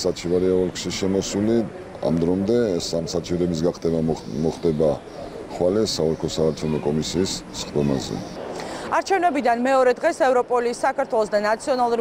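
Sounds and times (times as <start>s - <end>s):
man speaking: 0.0s - 8.4s.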